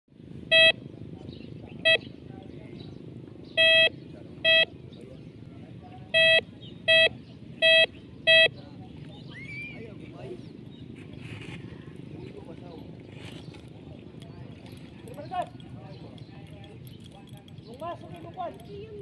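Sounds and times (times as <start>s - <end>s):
low background noise: 0.1s - 19.0s
metal detector beeps: 0.5s - 0.8s, 1.8s - 2.0s, 3.6s - 4.7s, 6.1s - 8.6s.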